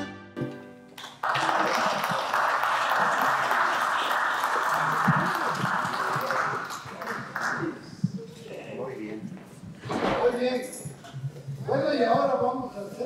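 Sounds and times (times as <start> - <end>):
music: 0.0 - 1.0
audience applauding: 0.9 - 8.0.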